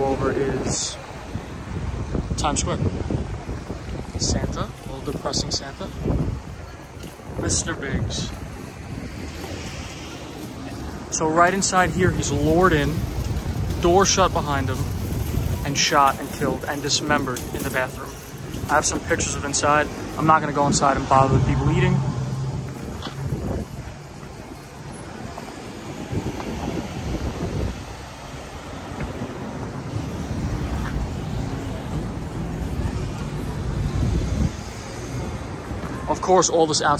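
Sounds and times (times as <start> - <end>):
wind buffeting microphone: 0.0 - 36.1
city street background noise: 0.0 - 36.9.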